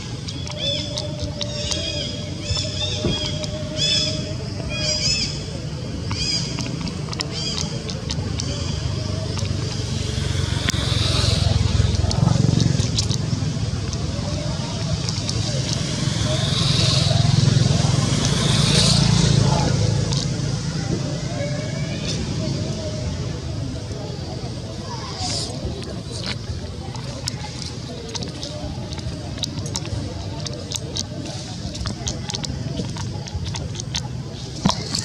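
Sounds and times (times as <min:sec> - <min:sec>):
low rumble of passing vehicles: 0:00.0 - 0:35.0
people's voices: 0:00.0 - 0:35.0.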